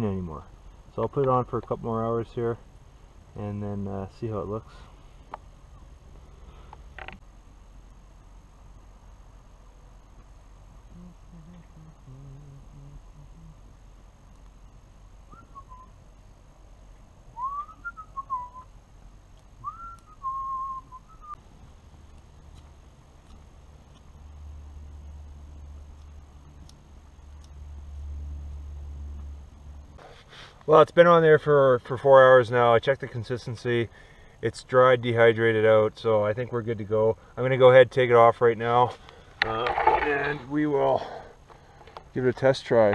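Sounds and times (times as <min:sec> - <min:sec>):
gliding whistled notes: 0:15.3 - 0:15.9, 0:19.6 - 0:21.4.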